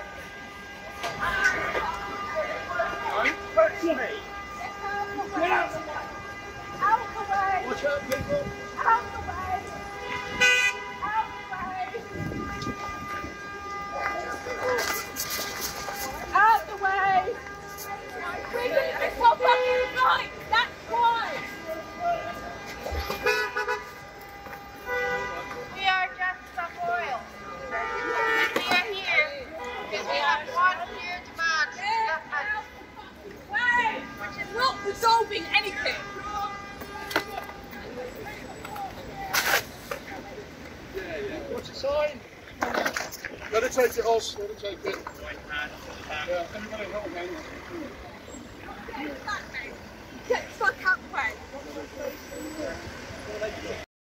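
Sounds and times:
vehicle horns honking: 0:00.0 - 0:40.5
road traffic: 0:00.0 - 0:53.9.

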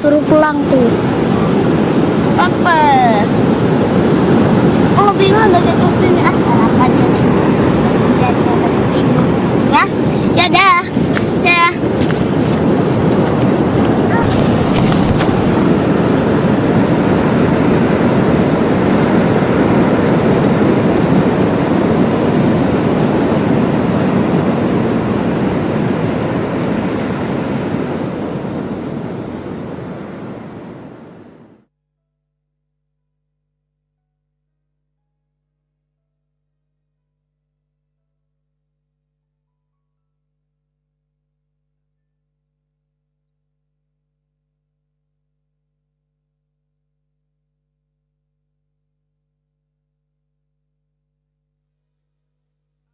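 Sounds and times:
ocean surf breaking: 0:00.0 - 0:31.6
wind buffeting microphone: 0:00.0 - 0:31.6.

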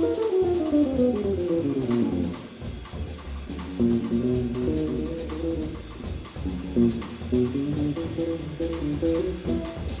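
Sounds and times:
drum kit cymbals: 0:00.0 - 0:10.0
upright bass: 0:00.0 - 0:10.0.

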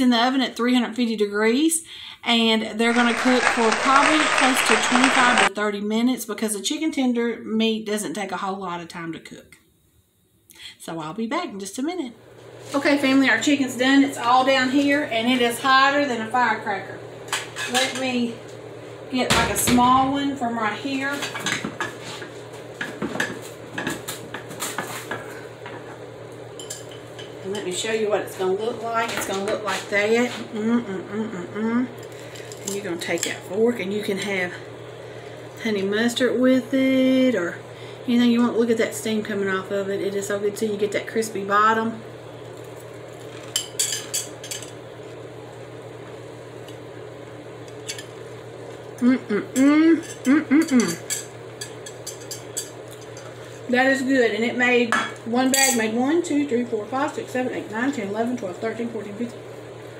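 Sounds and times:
steady low hum: 0:11.8 - 0:59.9.

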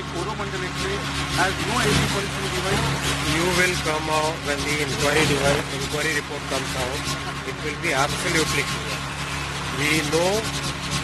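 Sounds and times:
crowd voices: 0:00.0 - 0:10.3
low engine hum: 0:00.0 - 0:11.0.

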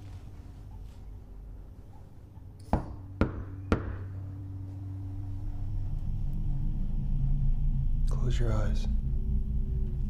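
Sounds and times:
low drone: 0:00.0 - 0:10.0.

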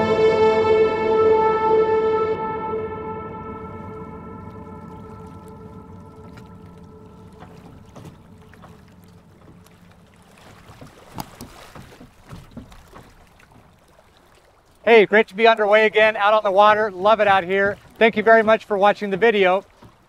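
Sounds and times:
music: 0:00.0 - 0:09.8
motor boat engine rumble: 0:00.0 - 0:20.0.

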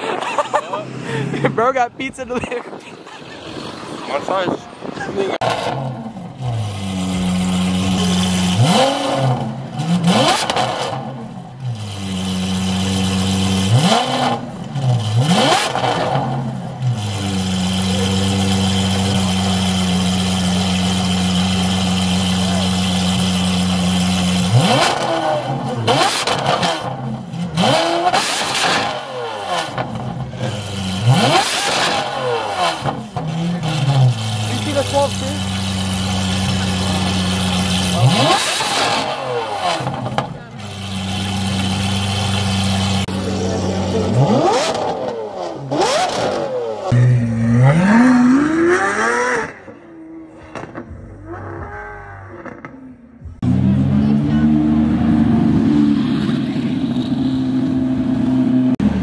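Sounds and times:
car engine idling and revving: 0:00.0 - 0:59.0.

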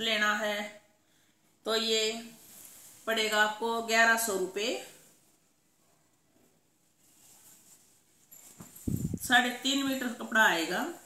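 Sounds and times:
fabric rustling: 0:02.0 - 0:11.0.

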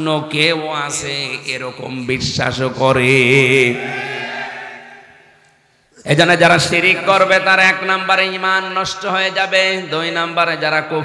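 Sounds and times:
man chanting through a microphone: 0:02.1 - 0:04.2.

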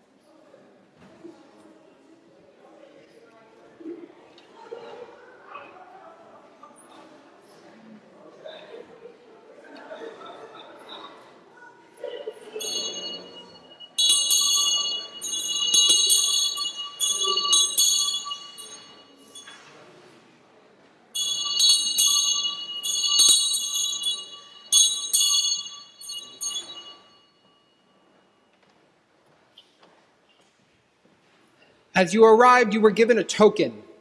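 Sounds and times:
small bells shaken: 0:12.6 - 0:19.7, 0:21.2 - 0:27.8.

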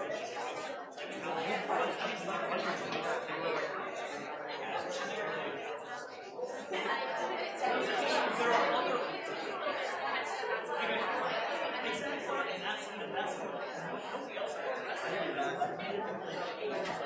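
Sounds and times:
crowd talking in a large hall: 0:00.0 - 0:17.0.

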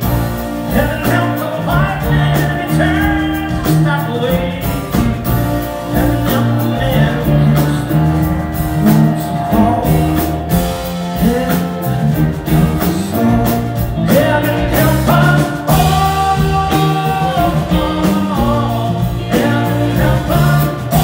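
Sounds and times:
live soul band playing: 0:00.0 - 0:21.0
man singing long notes: 0:05.9 - 0:21.0.

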